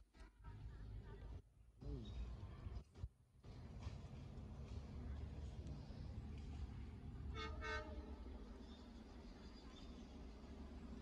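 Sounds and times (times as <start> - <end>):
train horn toots: 7.3 - 8.1.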